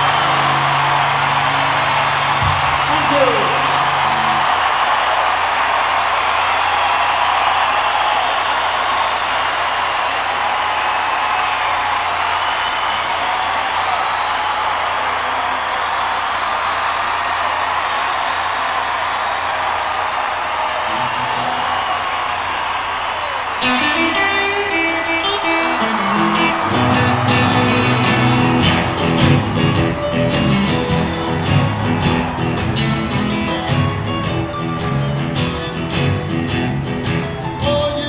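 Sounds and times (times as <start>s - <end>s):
crowd applauding and cheering: 0.0s - 38.0s
faint whistles and whoops: 11.2s - 13.3s, 20.9s - 23.8s.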